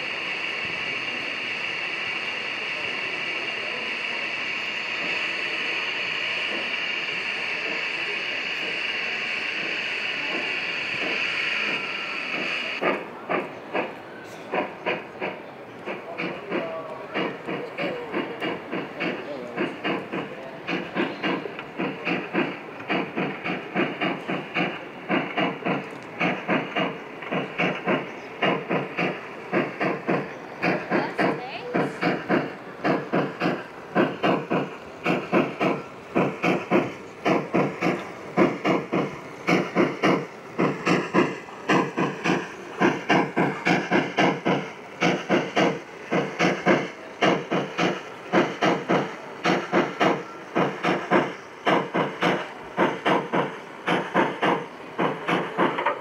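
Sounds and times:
model steam locomotive hissing: 0.0s - 56.0s
steam locomotive chuffing: 0.0s - 56.0s.

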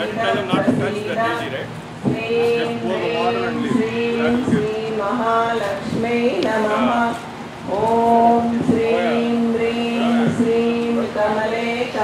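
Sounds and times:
voices chanting held note: 0.0s - 5.6s.

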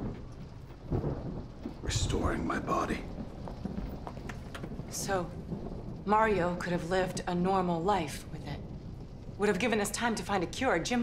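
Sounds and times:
steady rain: 0.0s - 11.0s
thunder rumbling: 0.0s - 11.0s.

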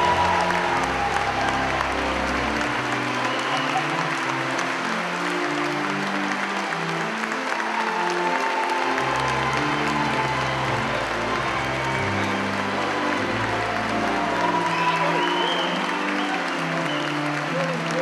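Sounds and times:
congregation applauding: 0.0s - 18.0s
organ music: 0.0s - 18.0s.

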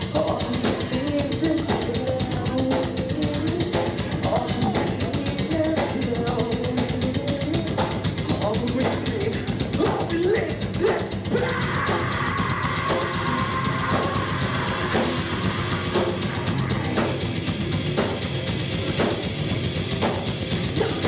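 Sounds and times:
drum kit beat: 0.0s - 21.0s
live rock band playing: 0.0s - 21.0s.

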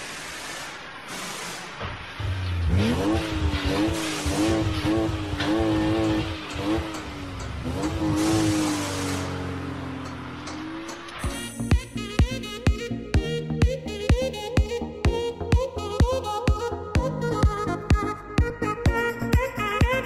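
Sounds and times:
revving car engine effect: 0.0s - 11.9s
music: 11.2s - 20.0s.

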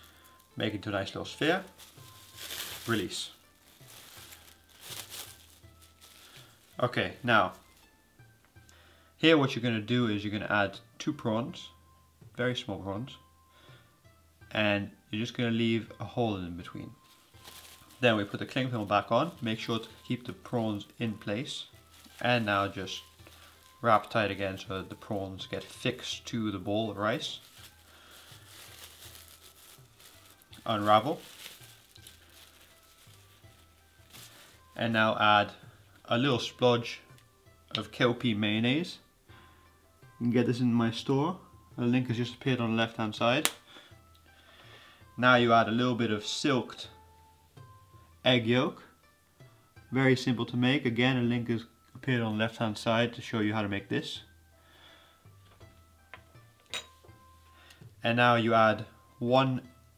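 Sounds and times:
cling film crinkling: 0.0s - 7.9s, 17.0s - 34.7s
faint background music: 0.0s - 59.9s.

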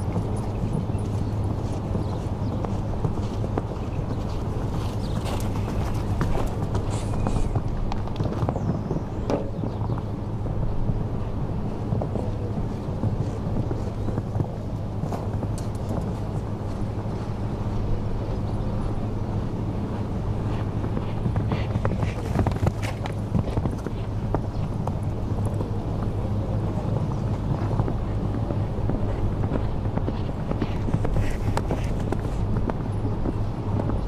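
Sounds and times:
horse hoofbeats on sand: 0.0s - 34.0s
steady low hum: 0.0s - 34.0s.

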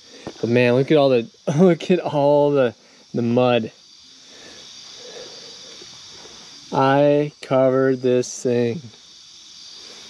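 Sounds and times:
crickets chirring: 0.0s - 10.0s
soft hiss: 0.0s - 10.0s.

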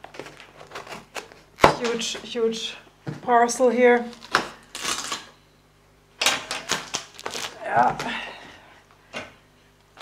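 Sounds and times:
packing tape ripping: 0.0s - 2.0s, 4.1s - 5.4s, 6.2s - 7.7s.

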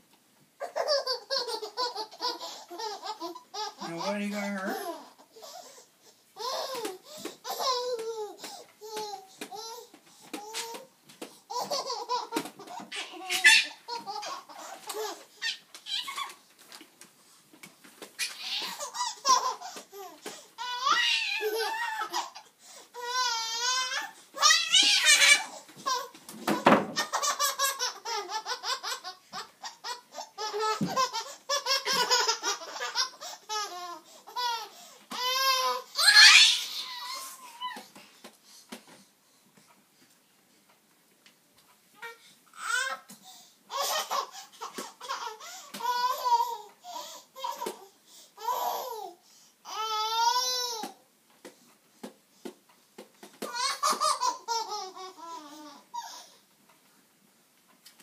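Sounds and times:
baby laughing: 0.6s - 5.6s, 6.4s - 10.9s, 11.5s - 16.4s, 18.2s - 37.8s, 43.7s - 46.7s, 53.4s - 56.2s
baby squealing: 12.9s - 14.7s, 15.4s - 16.4s, 18.2s - 19.6s, 20.6s - 22.4s, 23.0s - 26.1s, 35.2s - 37.8s.

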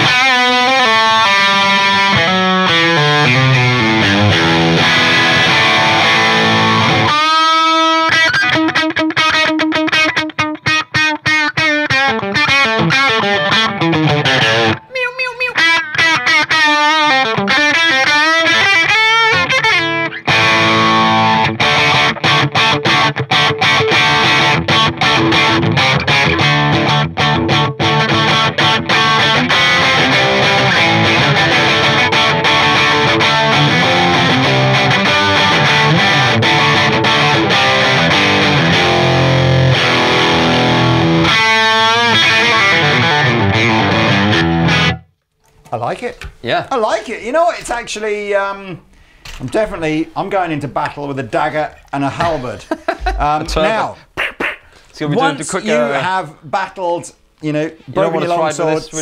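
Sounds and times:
overdriven electric guitar: 0.0s - 14.9s, 15.5s - 45.2s.

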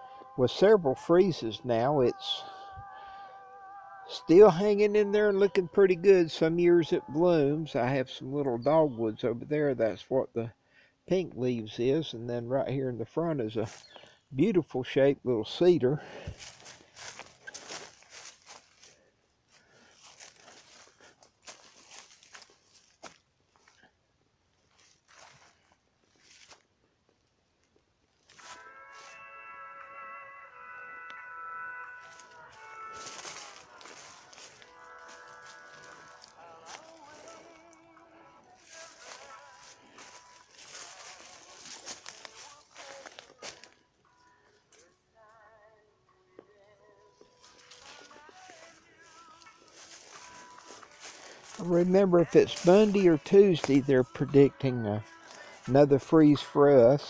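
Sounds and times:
footsteps crunching on dry leaves: 13.6s - 14.0s, 16.0s - 23.9s, 24.6s - 26.7s, 28.2s - 29.2s, 32.0s - 37.8s, 38.5s - 43.8s, 47.3s - 56.5s
music with held notes: 28.3s - 57.0s.

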